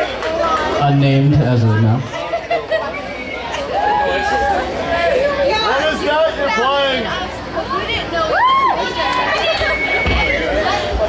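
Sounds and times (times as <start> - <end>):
crowd chatting: 0.0 - 11.0.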